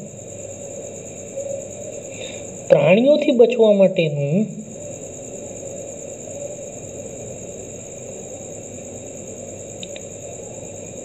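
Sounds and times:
high-pitched whine: 0:00.0 - 0:11.0
steady background noise: 0:00.0 - 0:11.0.

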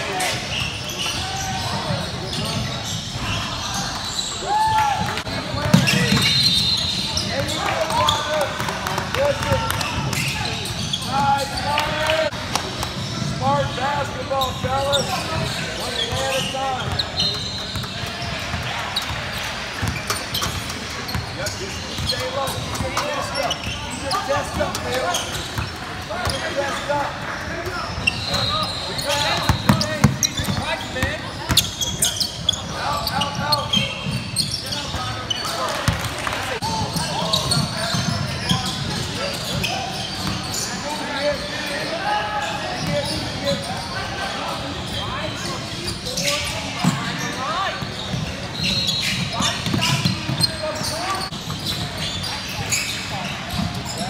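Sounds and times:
sneaker squeaks: 0:00.0 - 0:54.0.

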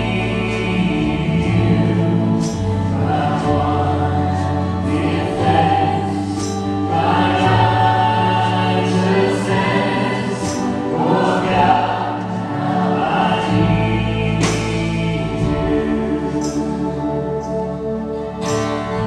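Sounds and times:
drums: 0:00.0 - 0:17.0
electric bass: 0:00.0 - 0:19.0
keyboard: 0:00.0 - 0:19.0
singing voices: 0:00.0 - 0:19.0.

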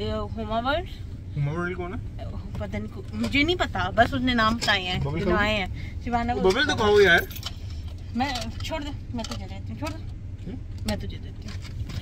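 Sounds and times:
car running hum: 0:00.0 - 0:12.0
person speaking in a car: 0:00.0 - 0:12.0
light clicks and jingles: 0:06.4 - 0:12.0.

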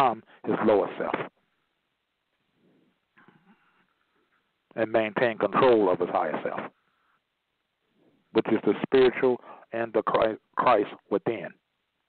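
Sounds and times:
man speaking: 0:00.0 - 0:01.4, 0:04.7 - 0:06.8, 0:08.3 - 0:11.7.

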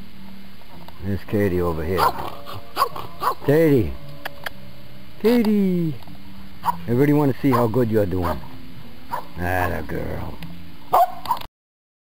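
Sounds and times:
dog barking: 0:02.0 - 0:03.5, 0:06.6 - 0:06.9, 0:07.5 - 0:08.5, 0:09.1 - 0:09.4, 0:10.9 - 0:11.5.

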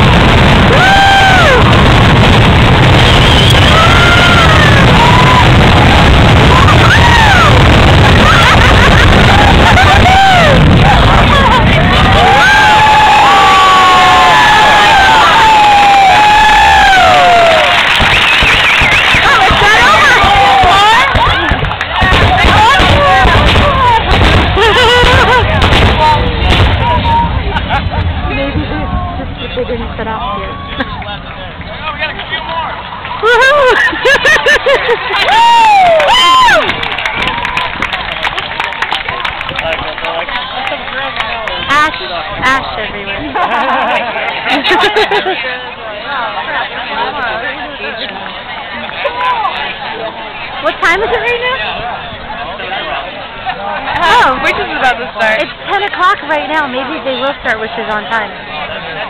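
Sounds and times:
crowd shouting: 0:00.0 - 0:59.0
fireworks rumble: 0:00.0 - 0:59.0
voices whooping: 0:00.4 - 0:29.3, 0:30.2 - 0:42.6.

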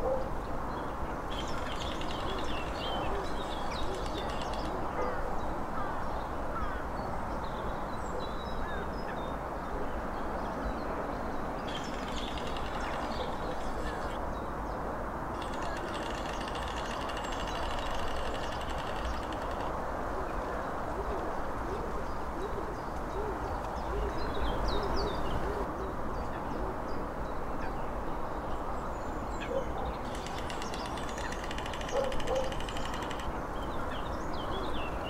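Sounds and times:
fast high-pitched rattle of clicks: 0:03.5 - 0:04.7, 0:11.7 - 0:14.2, 0:15.4 - 0:19.8, 0:30.0 - 0:33.4
storks clattering bills: 0:15.4 - 0:19.7.

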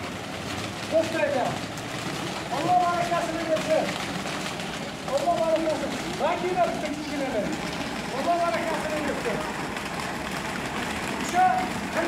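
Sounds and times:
pigeon wings flapping: 0:00.0 - 0:12.0.

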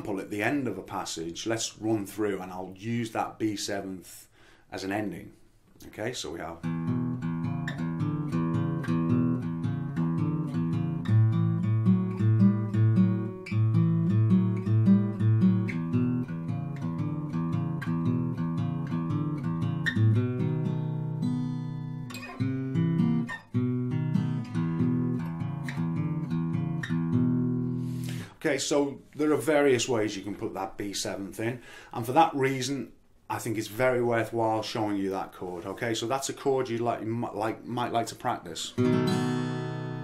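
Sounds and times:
acoustic guitar playing blues: 0:06.6 - 0:30.7, 0:37.8 - 0:40.0.

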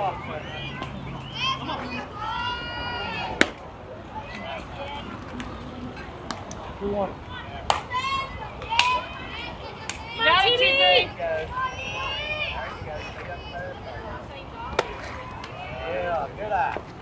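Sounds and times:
people shouting and calling out: 0:00.0 - 0:05.2, 0:06.7 - 0:16.8.

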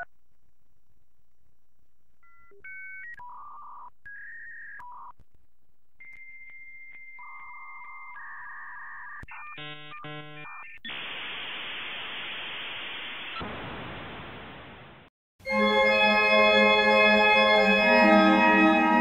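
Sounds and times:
dial-up modem tones: 0:02.2 - 0:05.2, 0:06.0 - 0:11.0
line noise hiss: 0:10.9 - 0:15.1.

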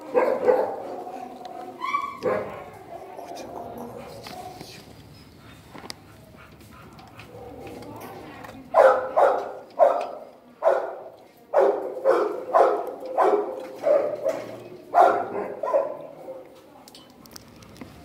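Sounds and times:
dog barking: 0:00.0 - 0:01.1, 0:01.9 - 0:04.6, 0:08.7 - 0:16.4.

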